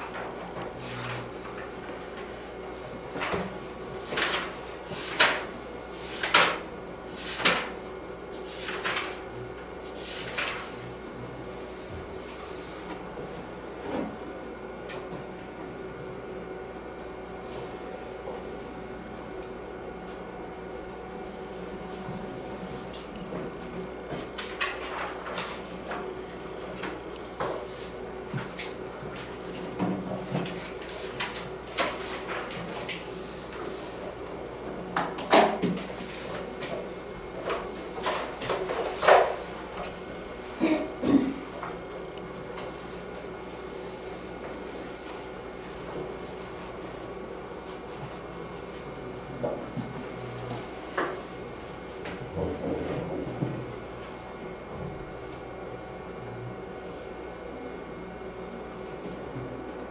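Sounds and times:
faint electrical hum: 0:00.0 - 0:59.9
paper rustles and clicks: 0:03.1 - 0:06.6, 0:07.2 - 0:07.8, 0:08.4 - 0:09.3, 0:10.0 - 0:10.8, 0:24.1 - 0:26.1, 0:30.2 - 0:33.7
pages turning: 0:08.5 - 0:09.2, 0:10.0 - 0:10.8.

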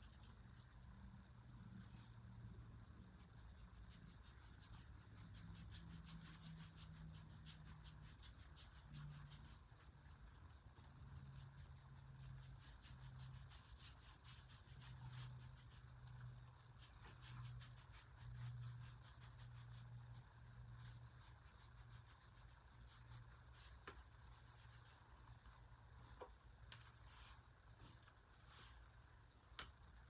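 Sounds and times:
faint steady hum: 0:00.0 - 0:30.0
paintbrush scratching on wood: 0:02.0 - 0:25.1.

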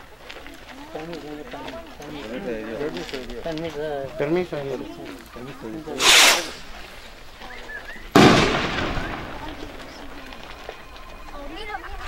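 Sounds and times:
firework echo: 0:06.0 - 0:07.0, 0:08.1 - 0:10.8
loud firework bang: 0:08.1 - 0:09.6.

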